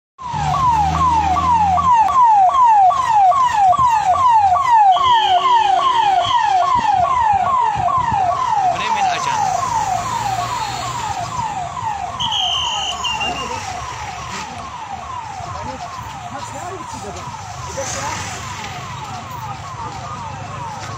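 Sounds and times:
electronic siren wailing: 0.2s - 20.9s.

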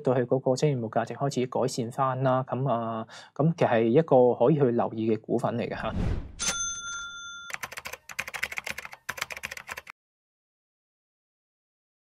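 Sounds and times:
bell-like ding: 6.4s - 7.6s
rapid typing-like clicks: 7.5s - 9.9s.

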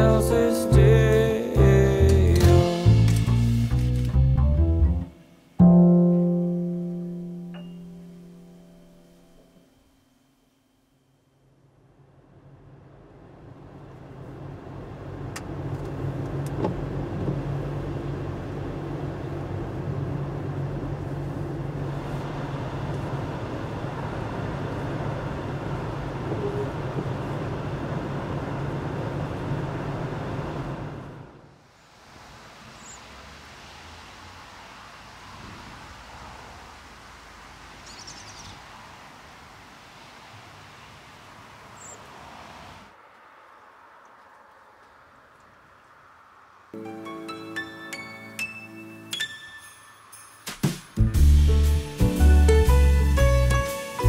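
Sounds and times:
car engine and tyre noise: 11.4s - 46.8s.

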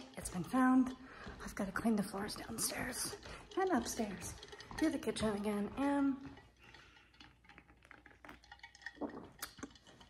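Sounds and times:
person sipping: 2.8s - 4.8s, 6.2s - 10.0s.

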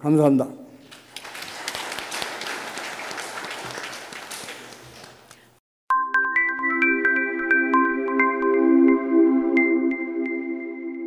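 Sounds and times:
audience applauding: 0.8s - 5.6s.

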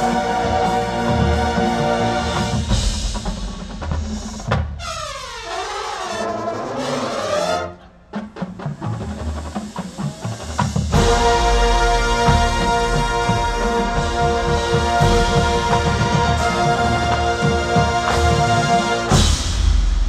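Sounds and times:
brass chords: 0.0s - 3.9s, 10.9s - 20.0s
drum hits: 1.3s - 5.4s, 9.9s - 20.0s
sharp percussion hit: 10.9s - 20.0s.

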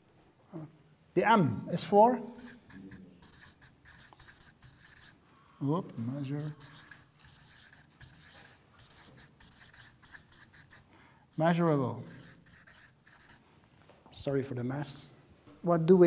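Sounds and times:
marker pen writing on paper: 2.3s - 5.2s, 6.4s - 13.4s.

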